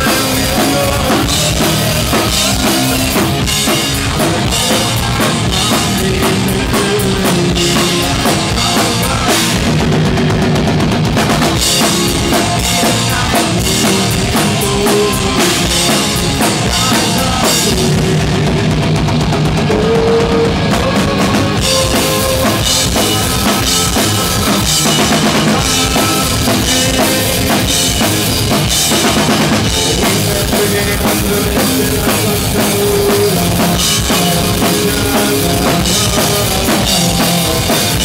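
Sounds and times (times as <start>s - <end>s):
drum kit fast beat: 0.0s - 38.0s
punk rock band playing: 0.0s - 38.0s.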